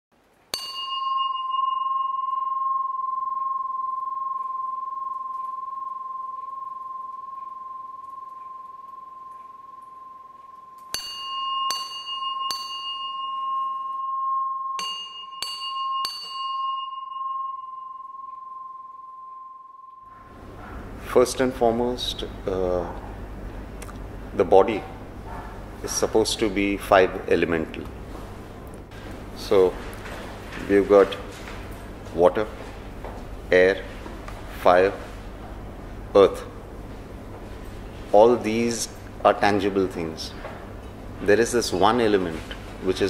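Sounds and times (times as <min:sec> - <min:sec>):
bell ringing: 0:00.5 - 0:20.2.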